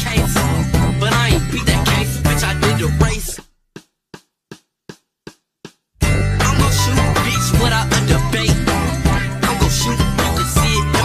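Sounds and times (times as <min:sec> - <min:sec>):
hip hop beat: 0:00.0 - 0:11.0.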